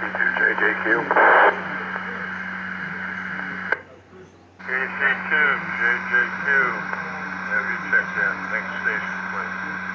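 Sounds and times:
burst of radio static: 0.0s - 3.8s, 4.6s - 9.9s
low hum and faint hiss: 0.0s - 9.9s.

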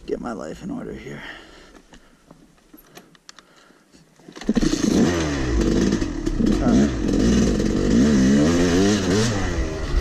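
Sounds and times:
faint clicks: 1.7s - 3.7s
dirt bike engine revving: 4.4s - 10.0s.

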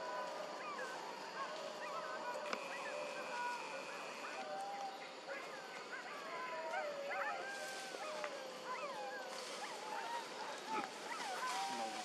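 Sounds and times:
monkeys cooing and squealing: 7.0s - 12.0s.

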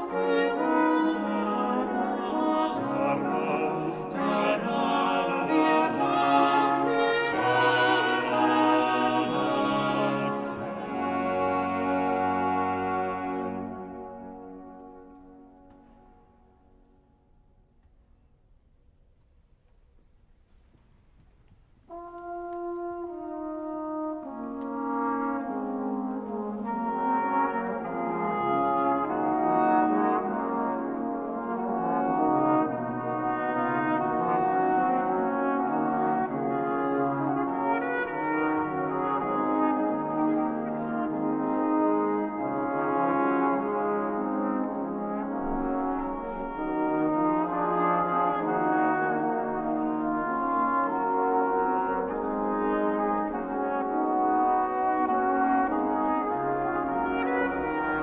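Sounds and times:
wind ensemble playing slow polyphony: 0.0s - 17.0s, 21.9s - 58.0s.

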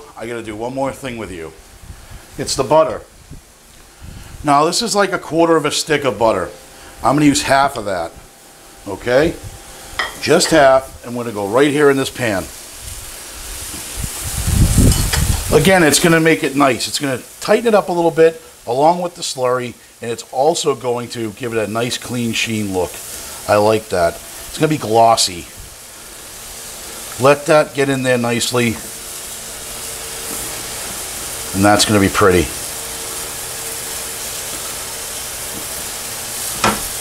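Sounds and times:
sauce simmering with faint sizzle: 15.6s - 37.0s.

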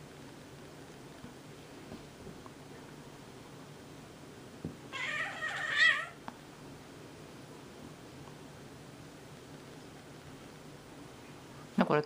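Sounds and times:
cat crying: 4.9s - 6.2s
cats wrestling: 4.9s - 6.2s.

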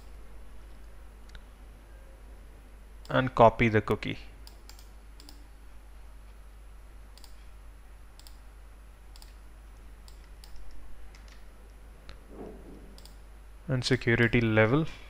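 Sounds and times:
low steady hum: 0.0s - 15.0s
mouse and keyboard clicks: 10.0s - 11.5s.

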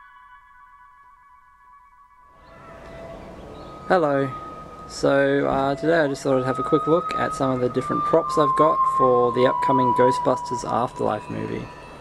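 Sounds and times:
faint background noise: 2.3s - 12.0s
bell-like chime chord: 2.4s - 12.0s.

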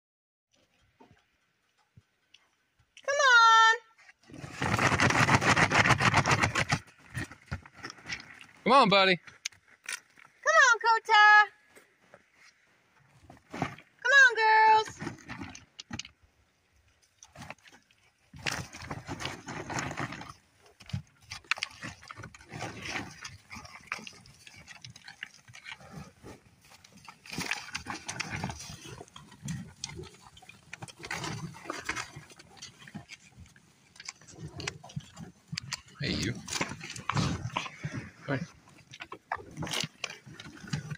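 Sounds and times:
bison grunting: 35.9s - 38.6s.

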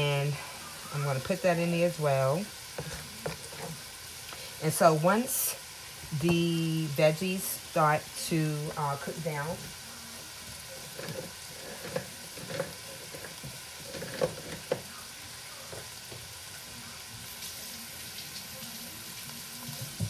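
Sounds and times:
vegetables sizzling in a pan: 0.0s - 20.0s.

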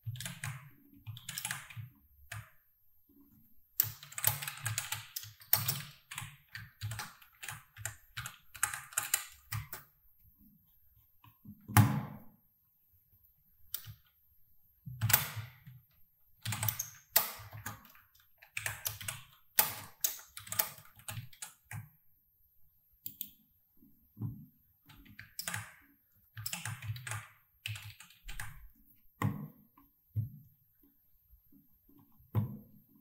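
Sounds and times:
typing on computer keyboard: 0.0s - 2.5s, 3.8s - 9.9s, 13.7s - 14.1s, 15.0s - 15.8s, 16.4s - 21.9s, 24.9s - 28.6s.

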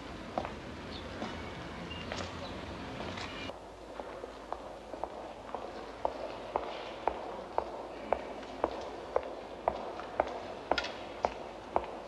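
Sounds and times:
footsteps on stone floor: 3.0s - 12.0s.

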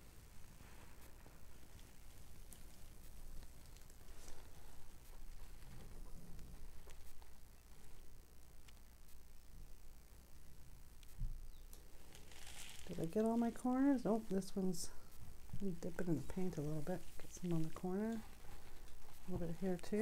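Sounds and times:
low room hum: 0.0s - 20.0s.

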